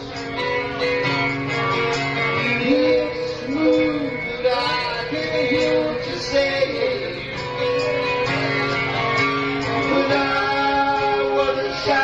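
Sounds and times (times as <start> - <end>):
guitar: 0.0 - 12.0
live band playing: 0.0 - 12.0.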